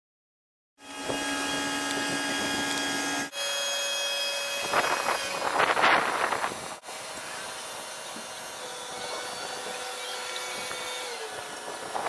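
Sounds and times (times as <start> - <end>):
crane engine drone: 0.8 - 12.0.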